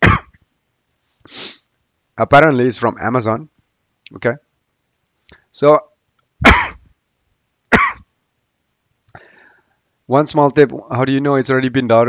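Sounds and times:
man coughing: 0.0s - 0.4s, 6.4s - 6.8s, 7.7s - 8.1s.

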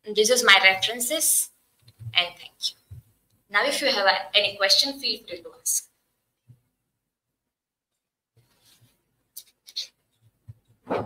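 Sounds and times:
faint rustling scrapes: 8.4s - 9.0s.

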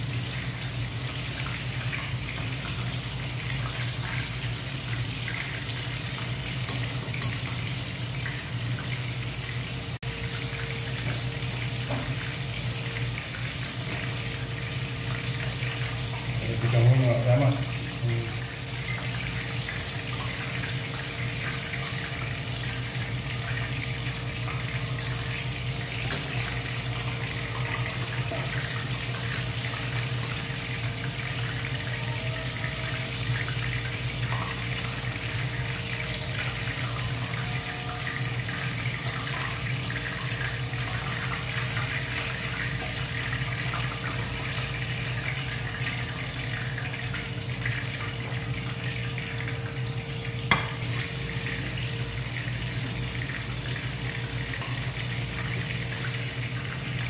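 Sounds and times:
chicken frying in oil: 0.0s - 57.0s.

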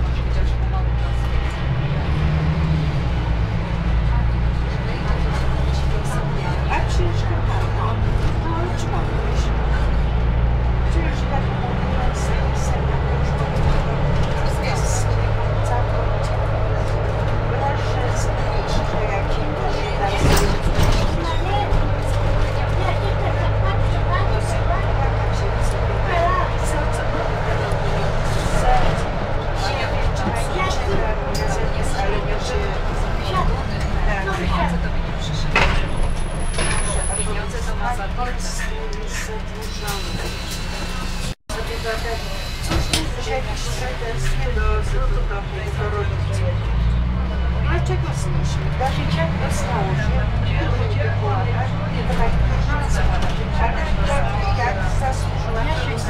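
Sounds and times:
people talking: 0.0s - 1.7s, 3.9s - 56.0s
bus diesel engine drone: 0.0s - 56.0s
road noise: 0.0s - 56.0s.

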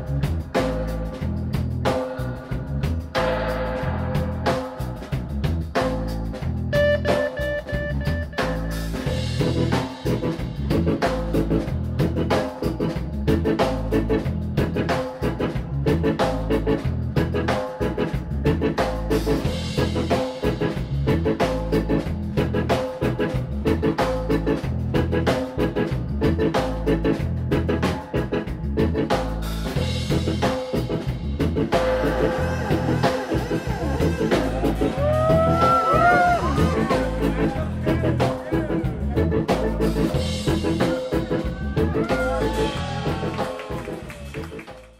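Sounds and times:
deep heavy bassline: 0.0s - 44.9s
drum kit beat: 0.0s - 44.9s
keyboard: 0.0s - 44.9s.

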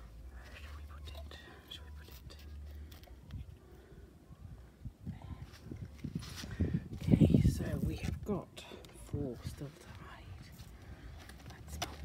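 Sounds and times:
soft rustling: 0.0s - 3.8s, 5.2s - 12.0s
people whispering: 0.2s - 5.8s, 7.0s - 12.0s.

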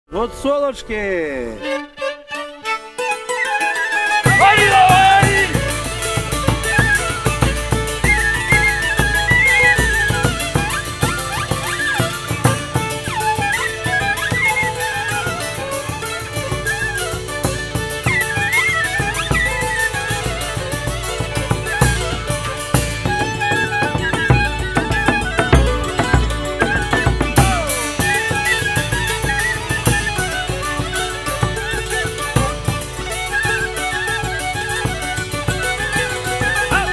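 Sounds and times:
fiddle leading: 0.1s - 36.9s
hammered dulcimer: 0.2s - 36.9s
wooden flute: 1.6s - 36.9s
wooden pipe: 1.6s - 36.9s
bass drum beat: 24.3s - 27.9s.

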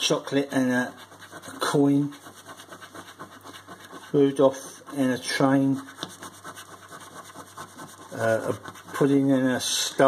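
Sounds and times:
coin scratching scratchcard: 0.0s - 9.4s.

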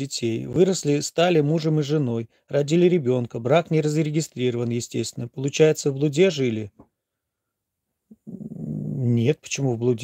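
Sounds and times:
man humming mmm: 8.2s - 9.2s.

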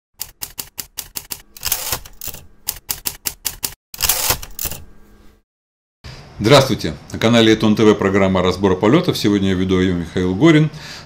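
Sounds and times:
typewriter key strikes: 0.2s - 4.8s.

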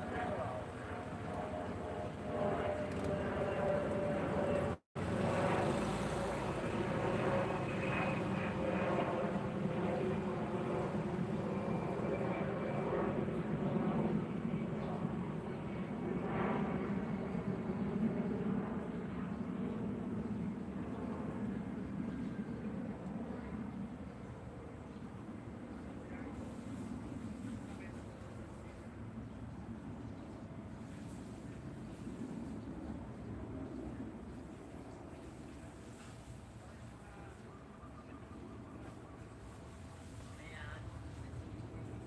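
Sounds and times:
engine rumble: 0.0s - 9.6s.

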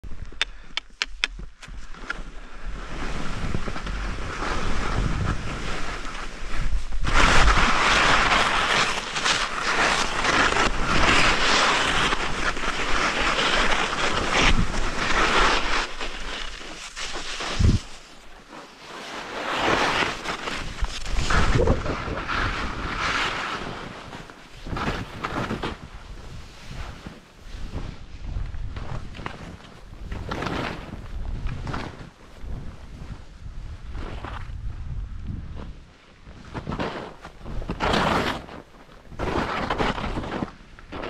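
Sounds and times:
quick clicks: 0.2s - 2.2s
wind buffeting microphone: 17.2s - 18.0s, 20.5s - 23.0s, 29.9s - 35.9s.

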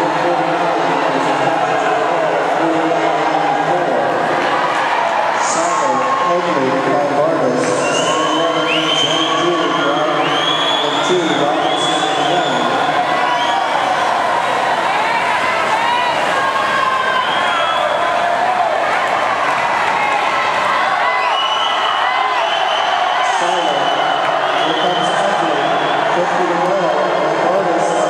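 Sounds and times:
crowd cheering and shouting: 0.0s - 28.0s.

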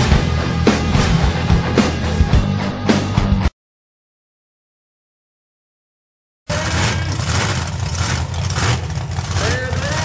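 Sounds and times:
monster truck engines idling: 6.5s - 10.0s.

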